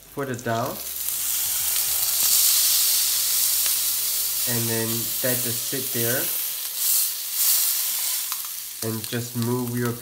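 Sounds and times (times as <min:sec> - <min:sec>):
fish sizzling in hot oil: 0:00.0 - 0:10.0.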